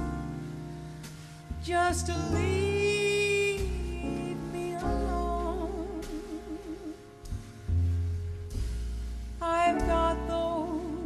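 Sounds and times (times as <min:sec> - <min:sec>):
low bass notes: 0:00.0 - 0:11.0
musical accompaniment: 0:00.0 - 0:11.0
woman singing with vibrato: 0:01.7 - 0:07.1, 0:09.4 - 0:11.0.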